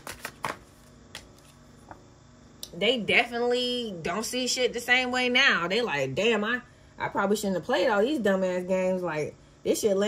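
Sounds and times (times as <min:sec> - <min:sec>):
cards being shuffled: 0:00.0 - 0:01.7.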